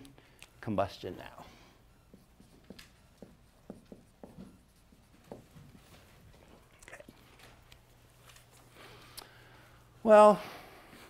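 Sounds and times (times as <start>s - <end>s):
marker pen scratching on whiteboard: 2.1s - 7.2s.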